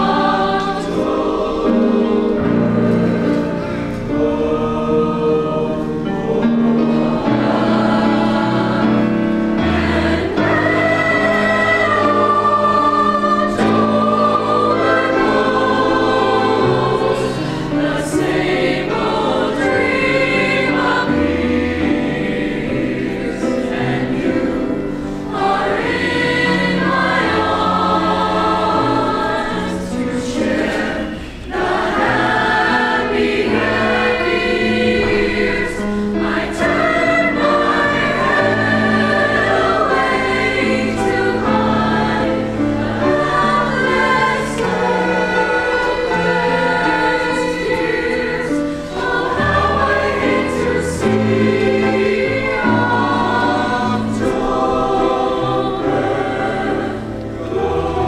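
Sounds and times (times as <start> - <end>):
mixed choir singing: 0.0 - 58.0.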